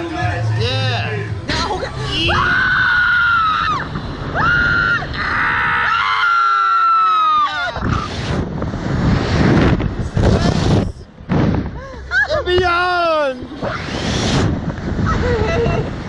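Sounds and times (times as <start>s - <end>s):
rushing air: 1.5s - 16.0s.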